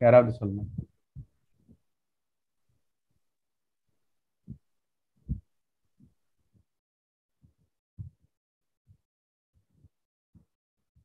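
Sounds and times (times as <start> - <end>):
muffled thumps on microphone: 0.6 - 1.4, 8.0 - 8.3.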